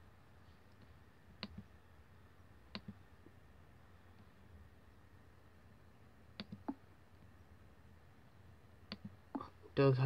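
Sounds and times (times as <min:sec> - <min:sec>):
computer mouse clicks: 0:00.7 - 0:01.7, 0:02.7 - 0:03.0, 0:06.4 - 0:06.8, 0:08.9 - 0:09.5.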